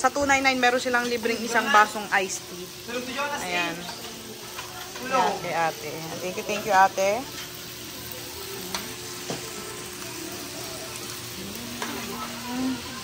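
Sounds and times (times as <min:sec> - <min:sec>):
meat sizzling on a grill pan: 0:00.0 - 0:13.0.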